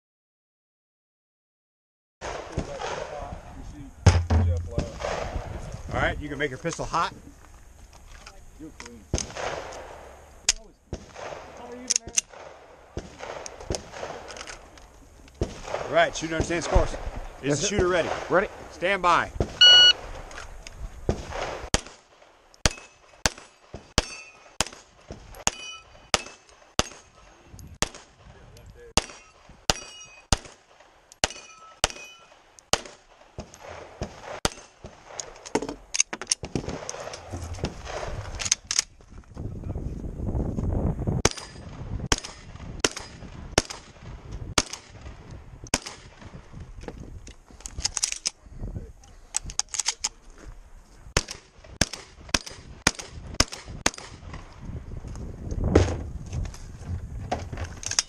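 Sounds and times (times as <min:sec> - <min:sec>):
shotgun shots: 0:02.2 - 0:03.3, 0:04.1 - 0:05.5, 0:09.1 - 0:10.2, 0:10.9 - 0:14.4, 0:15.4 - 0:18.7, 0:21.1 - 0:35.4, 0:36.4 - 0:38.6, 0:41.2 - 0:46.4, 0:51.1 - 0:54.4
pistol shots: 0:09.1 - 0:10.1, 0:10.9 - 0:14.4, 0:21.1 - 0:27.2, 0:27.8 - 0:28.3, 0:29.0 - 0:35.4, 0:41.2 - 0:45.1, 0:45.7 - 0:46.2, 0:51.1 - 0:54.3
gun handling noise: 0:13.4 - 0:15.5, 0:19.9 - 0:21.2, 0:31.1 - 0:39.4, 0:41.2 - 0:50.6, 0:51.2 - 0:58.0
steel targets ringing: 0:25.4 - 0:26.5, 0:31.2 - 0:32.3.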